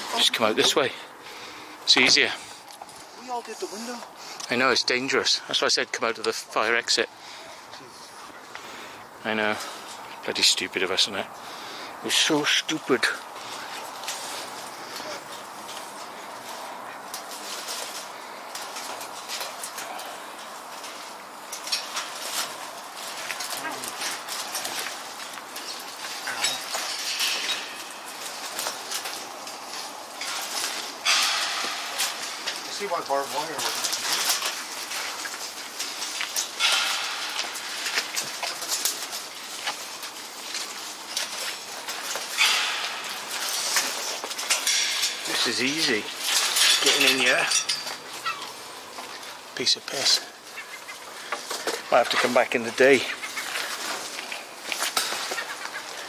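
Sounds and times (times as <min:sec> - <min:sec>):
clothing and undergrowth rustling: 0:00.0 - 0:56.0
footsteps: 0:00.0 - 0:56.0.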